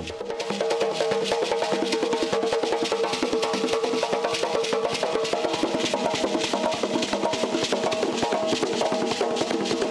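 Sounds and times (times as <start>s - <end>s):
fast hand drumming: 0.0s - 9.9s.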